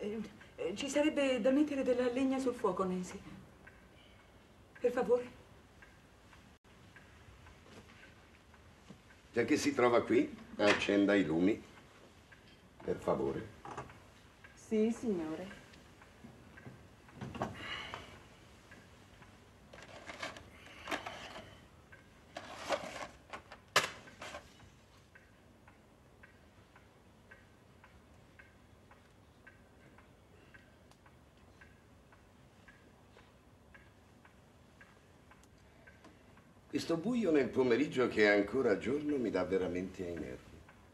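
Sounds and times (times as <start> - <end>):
clock ticking: 0.0 - 40.9
rustling and shuffling movement: 22.3 - 25.0.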